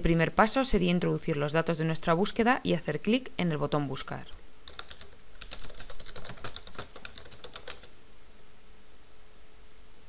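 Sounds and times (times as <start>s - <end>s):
typing on computer keyboard: 4.7s - 7.9s.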